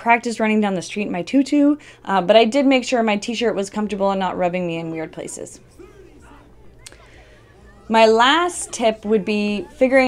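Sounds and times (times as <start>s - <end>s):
woman speaking: 0.0s - 5.6s, 6.3s - 10.0s
faint room noise: 0.0s - 10.0s.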